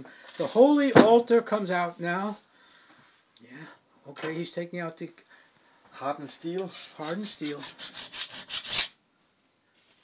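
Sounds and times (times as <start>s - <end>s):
file scraping steel: 6.5s - 9.0s.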